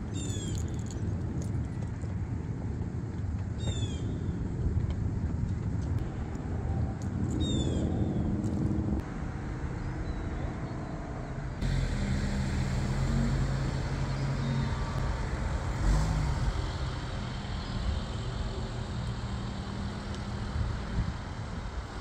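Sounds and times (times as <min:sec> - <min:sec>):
traffic noise: 0:00.0 - 0:22.0
car engine humming: 0:08.5 - 0:22.0.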